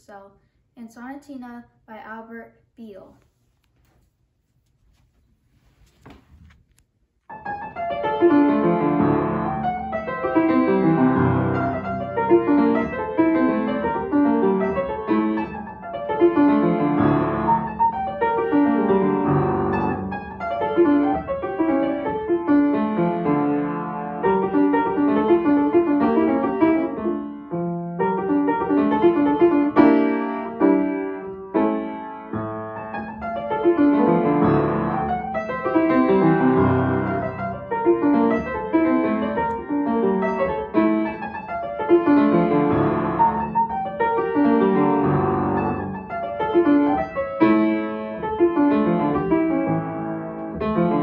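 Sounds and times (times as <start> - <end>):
solo piano with quick runs: 7.3 - 51.0.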